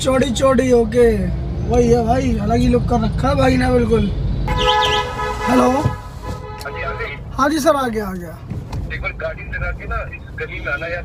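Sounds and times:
vehicle horn blaring: 0:04.5 - 0:07.3.

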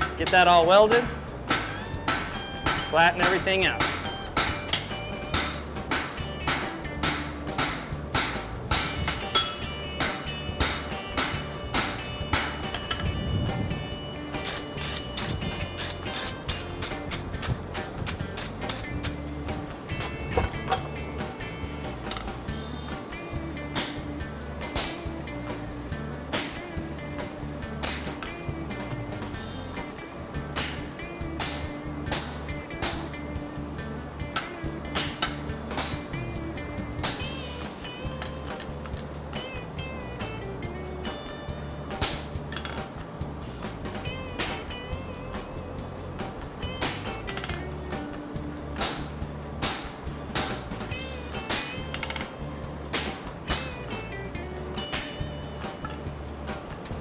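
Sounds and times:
background music: 0:00.0 - 0:57.0.

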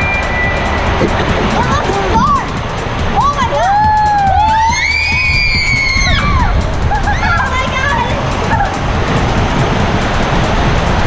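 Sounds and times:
raft rumbling on slide: 0:00.0 - 0:11.0
water rushing: 0:00.0 - 0:11.0.

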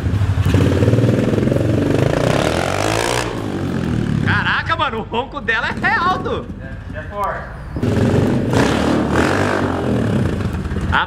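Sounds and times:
dirt bike engine revving: 0:00.0 - 0:11.0.

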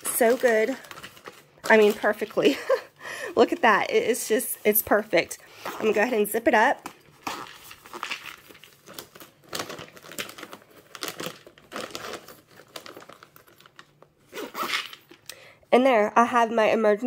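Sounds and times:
zipper rasps: 0:05.6 - 0:06.2, 0:07.2 - 0:08.4, 0:14.3 - 0:15.1.

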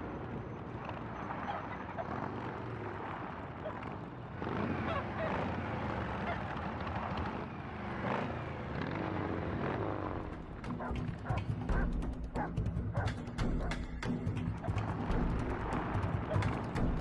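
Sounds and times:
motorcycle engine running: 0:02.2 - 0:17.0
film soundtrack music: 0:10.3 - 0:17.0
percussive music with low note: 0:10.4 - 0:17.0.

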